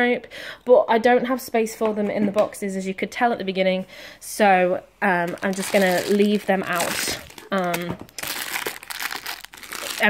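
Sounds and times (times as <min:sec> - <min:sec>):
plastic wrappers crinkling: 0:05.1 - 0:10.0.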